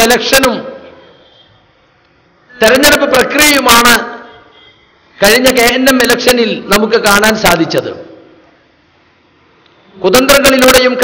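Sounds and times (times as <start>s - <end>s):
man speaking amplified: 0.0s - 1.0s, 2.5s - 4.5s, 5.2s - 8.4s, 9.9s - 11.0s
faint background hiss: 0.0s - 11.0s.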